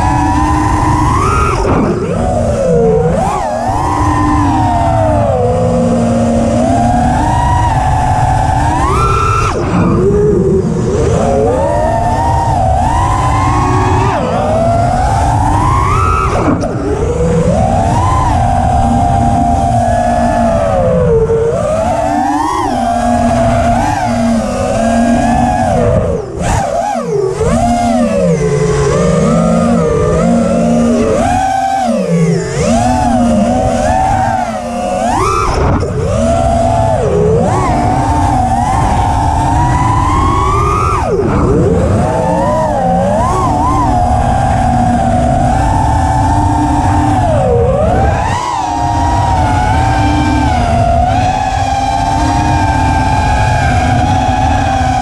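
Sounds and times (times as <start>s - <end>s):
drone motors whining: 0.0s - 55.0s
prop wash and wind rumble: 0.0s - 55.0s.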